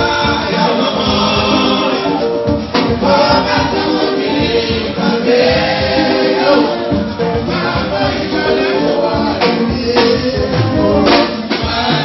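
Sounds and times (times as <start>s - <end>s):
men singing in chorus: 0.0s - 12.0s
steady drumbeat: 0.0s - 12.0s.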